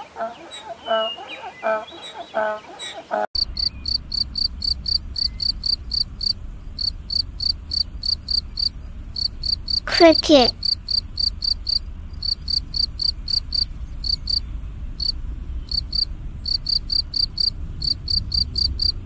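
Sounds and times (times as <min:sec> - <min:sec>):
cricket chirping: 0:03.4 - 0:09.8, 0:10.4 - 0:19.0.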